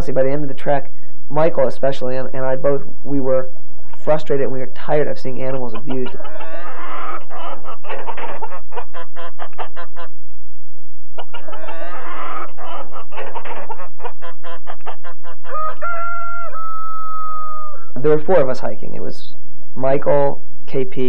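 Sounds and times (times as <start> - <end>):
chickens clucking: 5.4 - 10.5, 11.2 - 18.2
rooster crowing: 6.2 - 8.6, 11.2 - 13.9, 14.5 - 18.0.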